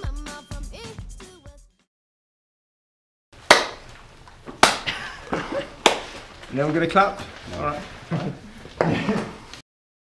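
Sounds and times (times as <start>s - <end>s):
hand claps with echo: 3.4s - 3.9s, 4.6s - 6.2s.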